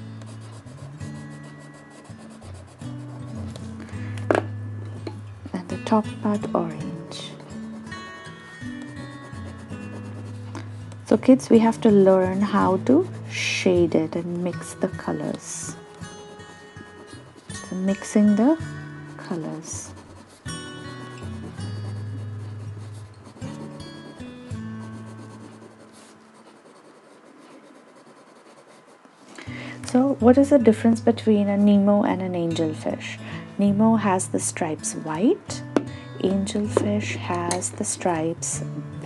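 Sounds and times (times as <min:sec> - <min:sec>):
pencil rubbing on paper: 0:00.0 - 0:03.8, 0:06.2 - 0:29.2.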